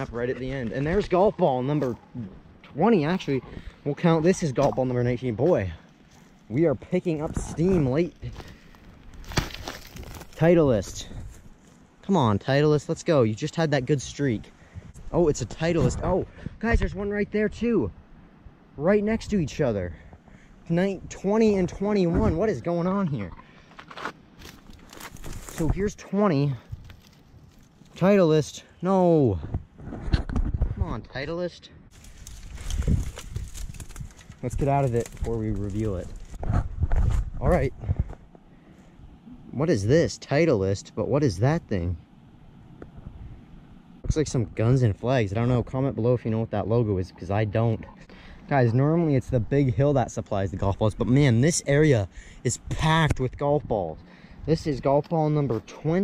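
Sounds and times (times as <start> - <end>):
twigs and brush rustling: 0.0 - 12.1, 23.3 - 28.8, 31.9 - 39.0
footsteps: 23.7 - 25.9, 31.9 - 38.4
small sticks snapping: 32.0 - 36.4.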